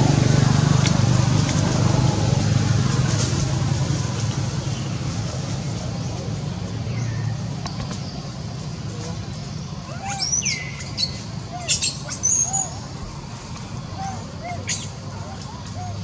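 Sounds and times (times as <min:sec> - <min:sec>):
engine low hum: 0:00.0 - 0:16.0.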